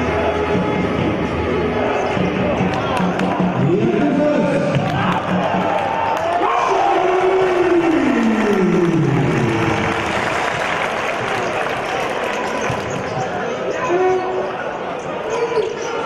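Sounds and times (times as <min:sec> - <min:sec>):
arena crowd noise: 0:00.0 - 0:16.0
commentator speaking: 0:03.6 - 0:04.8.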